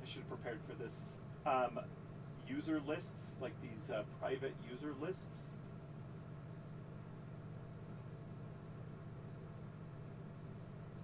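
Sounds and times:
faint hiss: 0.0s - 1.8s, 2.4s - 5.6s
steady low hum: 0.0s - 11.0s.

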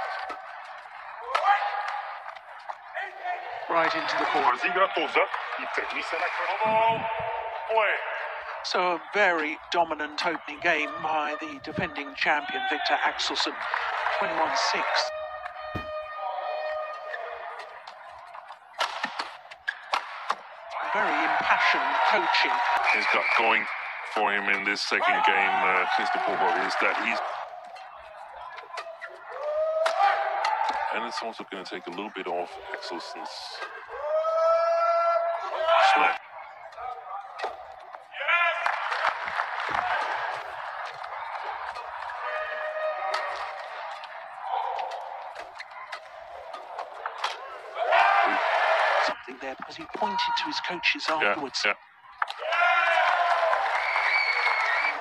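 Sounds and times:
crowd voices: 0.0s - 55.0s
faint arena hubbub: 0.0s - 55.0s
long held shout: 33.9s - 36.2s.

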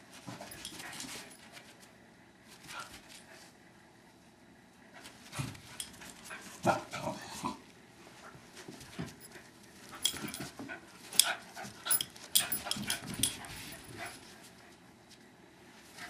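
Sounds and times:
small dogs play-wrestling noises: 0.1s - 1.9s, 5.0s - 14.8s.

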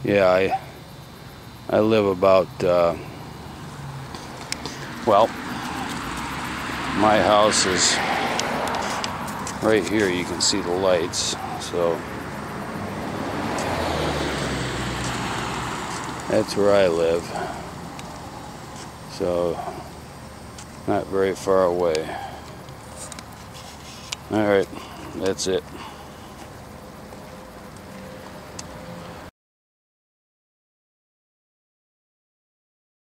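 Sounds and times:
car passing: 0.0s - 29.3s
faint constant hum: 15.7s - 28.7s.

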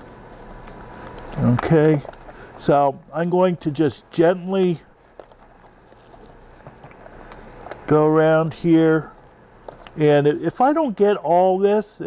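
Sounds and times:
potting mix rustling and crumbling: 4.9s - 10.6s.

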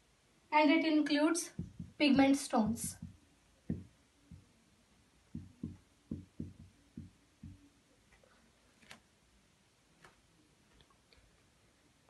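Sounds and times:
marker knocking on whiteboard: 1.6s - 4.4s, 5.3s - 7.6s.

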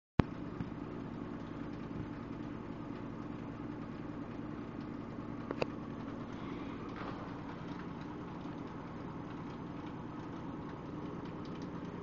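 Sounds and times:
washing machine spinning: 0.2s - 12.0s.

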